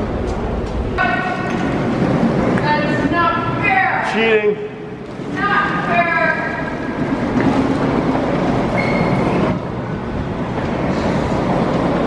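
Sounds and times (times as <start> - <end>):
skateboard wheels rolling on floor: 0.0 - 3.6, 5.0 - 12.0.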